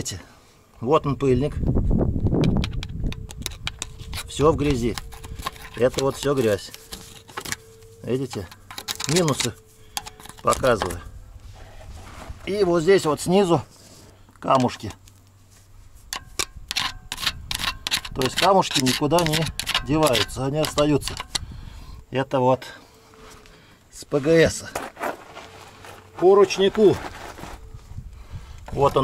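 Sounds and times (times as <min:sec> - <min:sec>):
faint steady hum: 0:00.0 - 0:29.0
screwdriver tapping and scraping metal: 0:02.4 - 0:11.0, 0:16.1 - 0:21.5.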